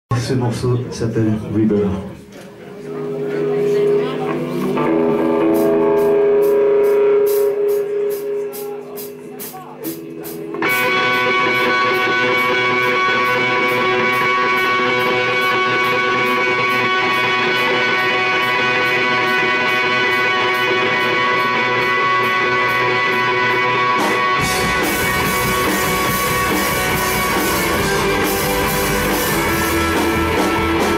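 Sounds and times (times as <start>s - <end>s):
rock band playing live: 2.7s - 30.9s.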